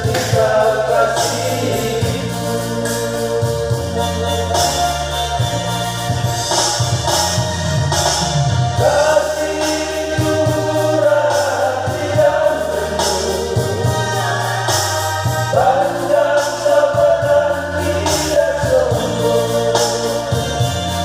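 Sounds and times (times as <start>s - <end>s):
electronic keyboard: 0.0s - 21.0s
men's vocal group singing in harmony: 0.0s - 21.0s.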